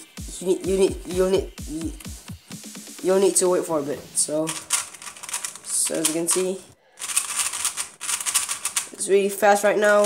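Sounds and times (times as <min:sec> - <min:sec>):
speed cube clicking clatter: 0:04.5 - 0:09.0.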